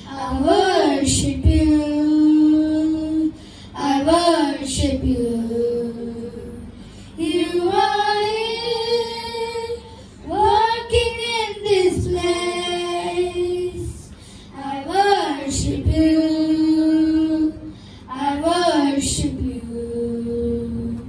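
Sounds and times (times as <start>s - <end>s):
children singing into microphones: 0.0s - 21.0s.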